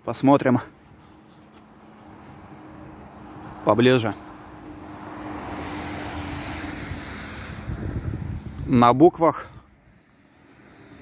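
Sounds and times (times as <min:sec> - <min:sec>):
road traffic rushing: 0:00.0 - 0:11.0.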